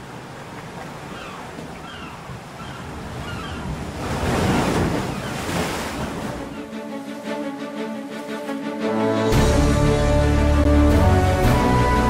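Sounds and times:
ocean surf washing onto beach: 0.0s - 10.1s.

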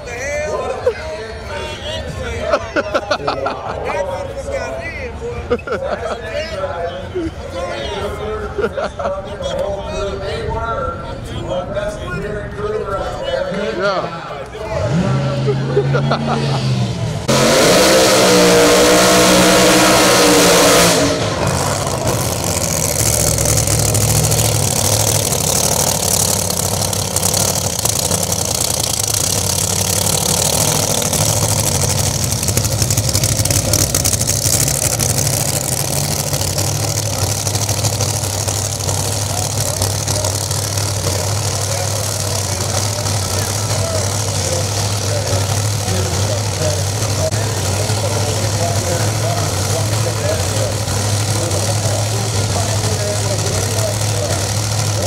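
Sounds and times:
drag car at full throttle: 0.0s - 55.0s
car engine idling: 9.5s - 55.0s.

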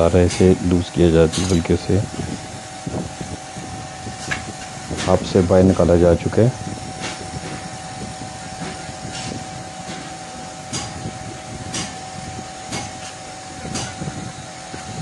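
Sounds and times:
machine hum with thin tone: 0.0s - 15.0s.

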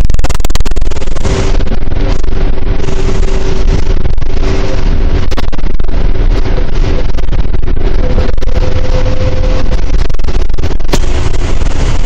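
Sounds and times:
bus diesel engine running: 0.0s - 12.0s
steady whine: 0.0s - 12.0s.

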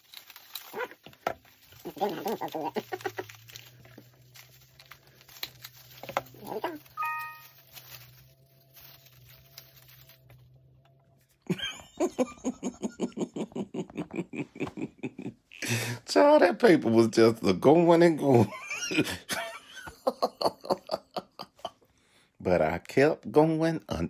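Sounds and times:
paper rustling and crinkling: 0.0s - 11.4s.

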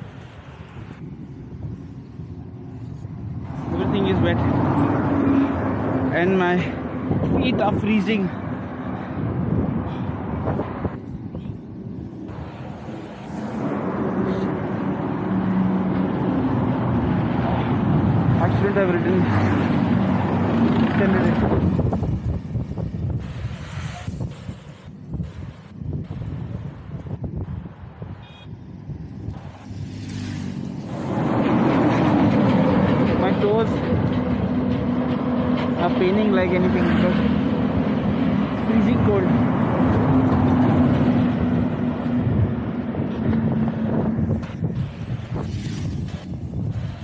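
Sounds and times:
truck passing on highway: 2.0s - 24.2s, 25.2s - 47.0s.

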